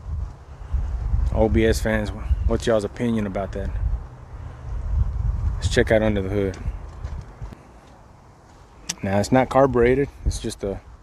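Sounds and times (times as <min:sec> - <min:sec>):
wind rumble on microphone: 0:00.0 - 0:07.7, 0:09.6 - 0:11.0.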